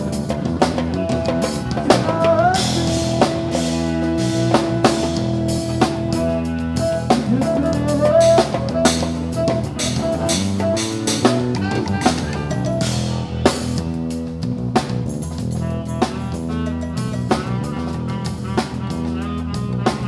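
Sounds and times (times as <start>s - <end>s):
bass guitar: 0.0s - 20.0s
drum kit: 0.0s - 20.0s
electric guitar lead: 0.0s - 20.0s.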